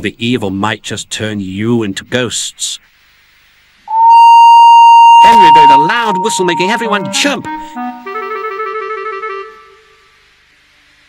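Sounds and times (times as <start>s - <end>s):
steam locomotive whistle: 3.9s - 9.4s.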